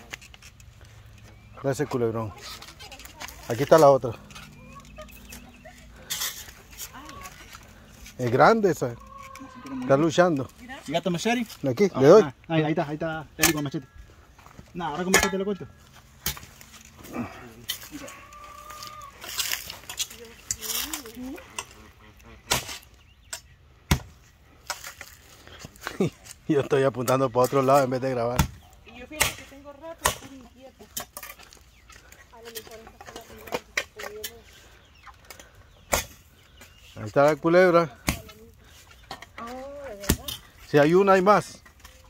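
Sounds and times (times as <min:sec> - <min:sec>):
hens clucking: 0:01.0 - 0:12.3, 0:16.6 - 0:23.6, 0:28.6 - 0:42.0
poultry call: 0:04.2 - 0:08.1, 0:08.8 - 0:10.1, 0:17.1 - 0:22.5.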